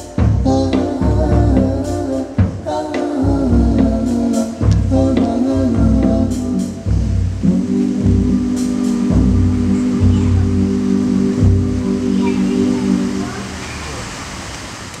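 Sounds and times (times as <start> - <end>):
low drum or bass hits: 0.0 - 12.7.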